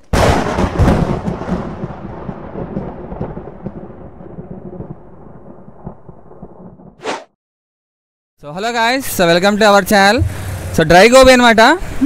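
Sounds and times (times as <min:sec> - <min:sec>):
rumbling crackling thunder crash: 0:00.1 - 0:07.0.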